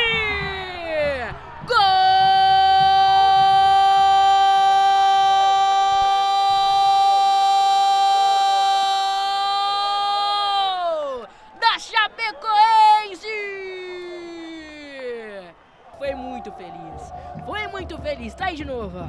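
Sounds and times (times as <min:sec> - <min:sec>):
commentator shouting goal: 0:00.0 - 0:19.0.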